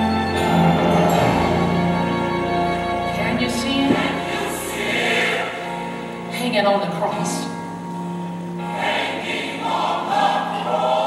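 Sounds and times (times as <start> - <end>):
gospel choir singing: 0.0 - 6.3, 8.6 - 11.0.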